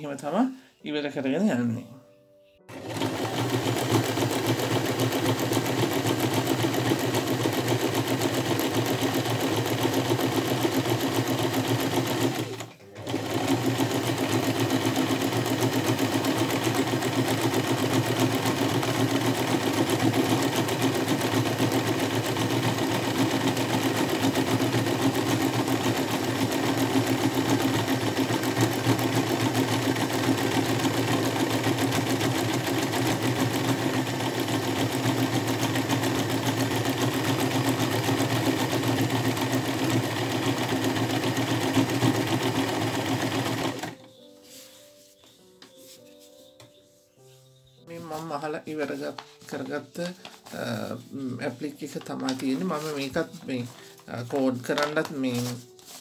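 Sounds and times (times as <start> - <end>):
sewing machine stitching: 2.7 - 44.0, 50.0 - 56.0.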